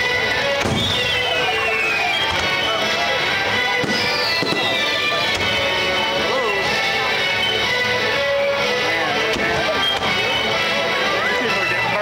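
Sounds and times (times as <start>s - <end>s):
music with held notes: 0.0s - 12.0s
sharp bangs: 0.5s - 1.4s, 3.6s - 5.8s
fireworks bursting: 0.5s - 3.0s, 3.6s - 6.0s.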